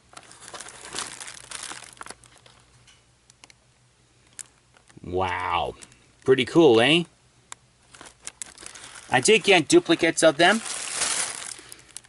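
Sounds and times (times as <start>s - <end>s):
plastic packaging crinkling: 0.0s - 2.8s, 7.8s - 12.0s.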